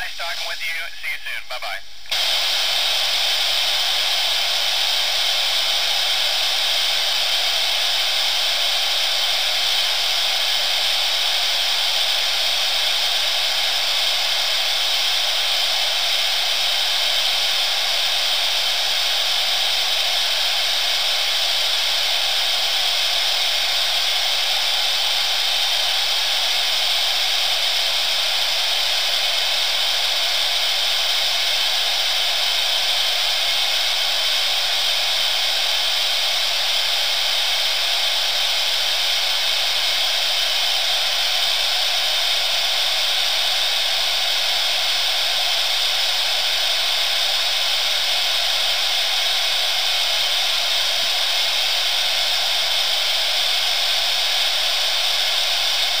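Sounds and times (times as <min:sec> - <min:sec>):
radio static hiss: 0:00.0 - 0:56.0.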